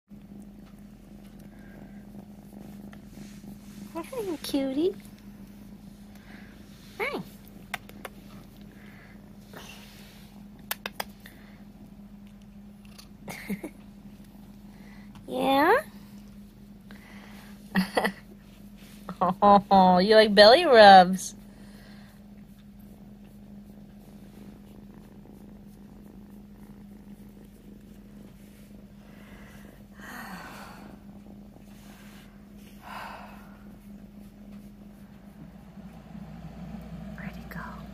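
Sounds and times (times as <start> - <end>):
constant low hum: 0.1 - 37.9
kitten purring: 0.1 - 37.9.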